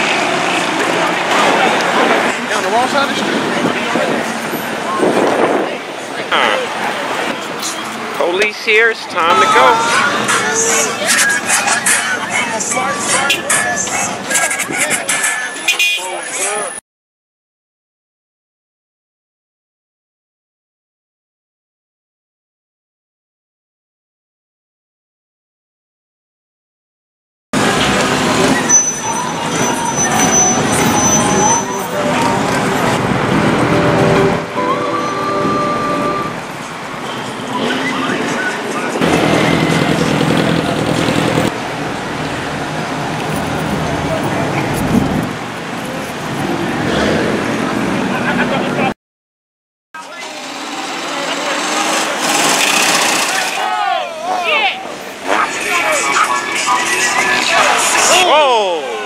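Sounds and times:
car engines: 0.0 - 16.8, 27.6 - 49.0, 50.0 - 59.0
indistinct voices: 0.4 - 16.8, 27.6 - 41.5, 50.0 - 59.0
rising and falling squeals: 28.1 - 36.6
music: 34.2 - 36.3.

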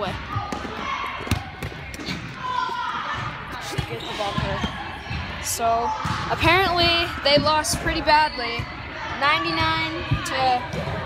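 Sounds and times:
volleyballs bouncing and hit: 0.0 - 11.0.

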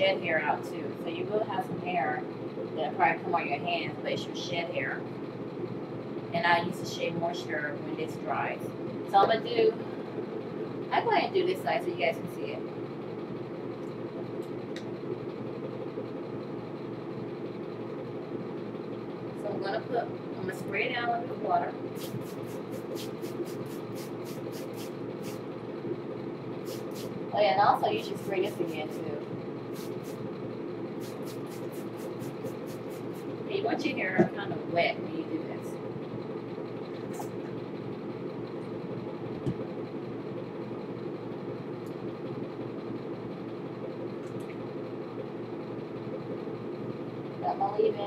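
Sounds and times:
ventilation fan humming: 0.0 - 48.0
spray bottle hissing: 22.0 - 25.4, 26.6 - 27.1, 29.7 - 30.2, 31.0 - 33.3.

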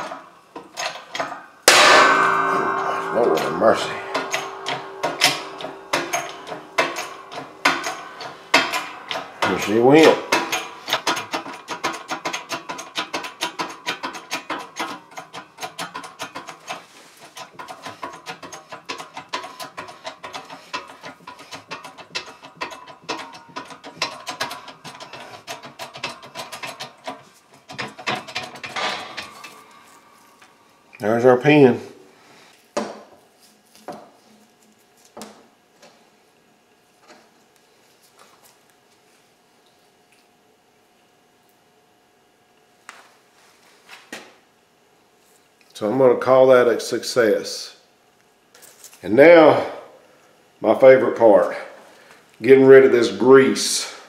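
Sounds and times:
shop press clicking: 0.0 - 16.8.

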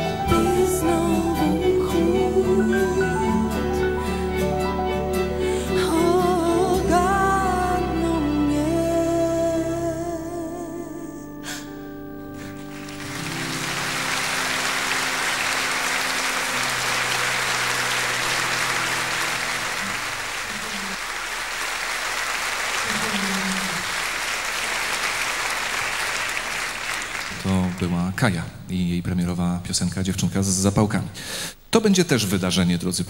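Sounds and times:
audience applauding: 12.5 - 28.2
man speaking: 27.4 - 33.0.

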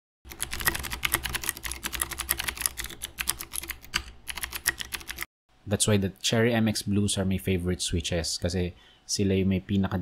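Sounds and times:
fast typing on mechanical keyboard: 0.3 - 5.3.

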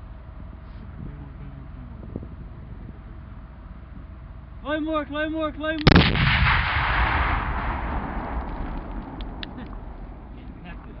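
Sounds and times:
explosion rumble: 5.8 - 11.0.

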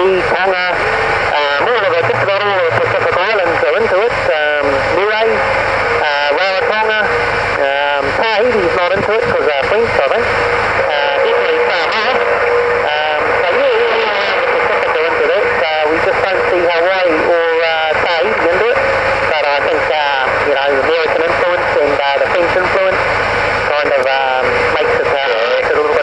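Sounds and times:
static hiss: 0.0 - 26.0
warbling radio voice: 0.0 - 26.0.

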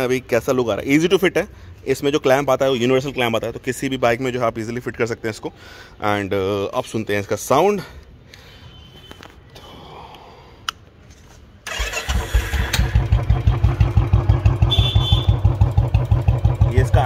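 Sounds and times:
motorcycle engine starting and idling: 11.6 - 17.0.

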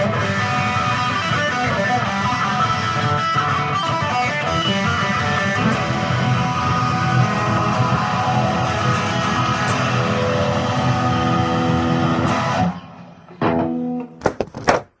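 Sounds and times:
electric guitar riffs: 0.0 - 14.3.

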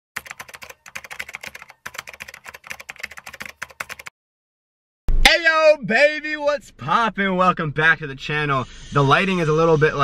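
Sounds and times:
keyboard typing clicks: 0.2 - 4.1.

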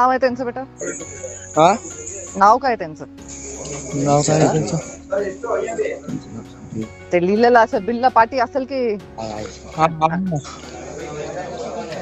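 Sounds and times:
steady high-pitched trill: 0.8 - 6.8
voices on a phone call: 0.8 - 7.7.

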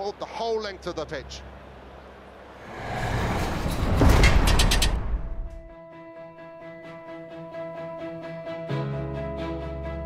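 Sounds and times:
whoosh transition with deep rumble: 2.6 - 5.7
soft music with held notes: 5.8 - 10.0.

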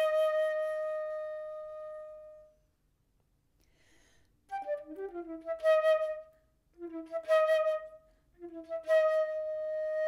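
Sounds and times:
flute playing: 0.0 - 2.6, 4.5 - 10.0
faint breath noise: 3.6 - 4.5.

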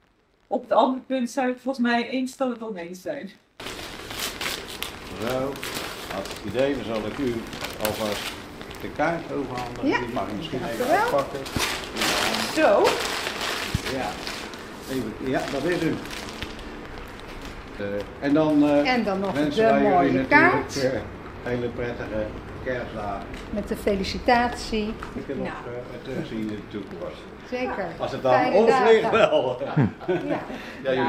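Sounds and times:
low steady background noise: 0.0 - 31.0
wrapping paper tearing: 3.6 - 20.9.

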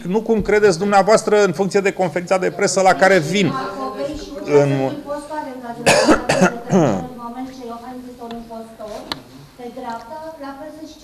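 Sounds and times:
person coughing: 5.8 - 7.2.

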